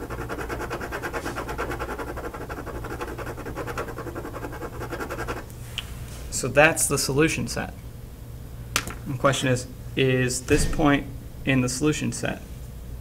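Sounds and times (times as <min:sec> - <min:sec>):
pencil shading on paper: 0:00.0 - 0:05.4.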